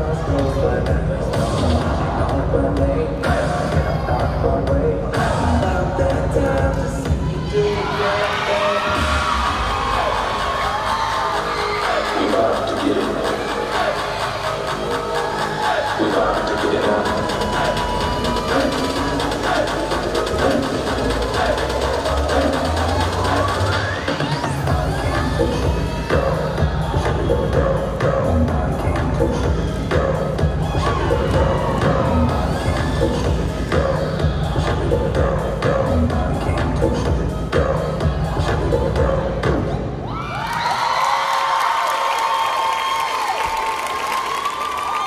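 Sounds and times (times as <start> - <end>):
pop dance music: 0.0 - 41.6
audience cheering: 7.2 - 24.6, 40.0 - 45.0.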